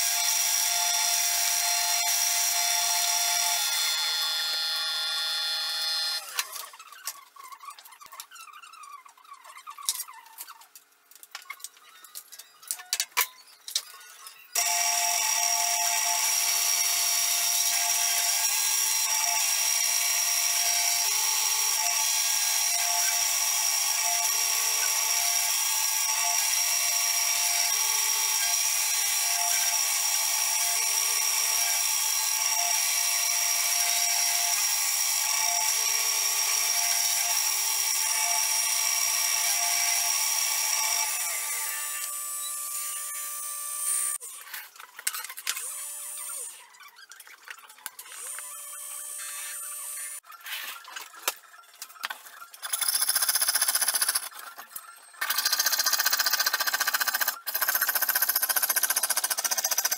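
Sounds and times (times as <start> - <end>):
milling machine whine: 14.6 - 25.2.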